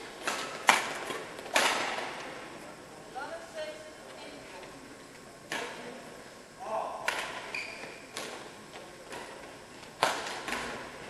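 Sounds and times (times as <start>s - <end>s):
racket hitting shuttlecock: 7.0s - 7.5s, 10.0s - 10.8s.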